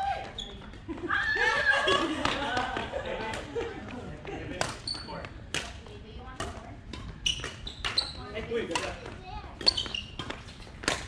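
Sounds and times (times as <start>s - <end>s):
shoes squeaking on wooden floor: 4.8s - 5.4s, 7.0s - 8.7s, 9.4s - 10.8s
racket striking shuttlecock: 5.5s - 11.0s.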